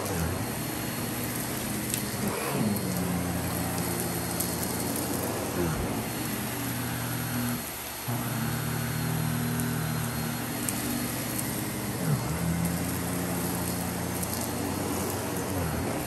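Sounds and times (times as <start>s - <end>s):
vacuum cleaner on carpet: 0.0s - 16.0s.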